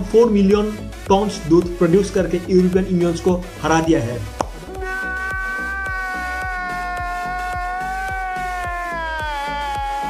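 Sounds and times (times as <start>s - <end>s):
background music with steady beat: 0.0s - 10.0s
man's high-pitched wailing cry: 4.7s - 10.0s.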